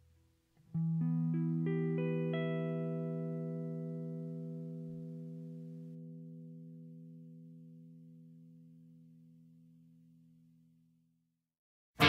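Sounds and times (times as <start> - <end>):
clean guitar picking a chord: 0.8 - 9.8.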